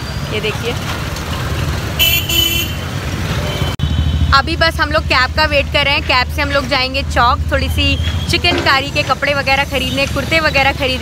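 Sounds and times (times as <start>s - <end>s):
street traffic rumbling: 0.0s - 11.0s
vehicle horn tooting: 2.0s - 2.8s.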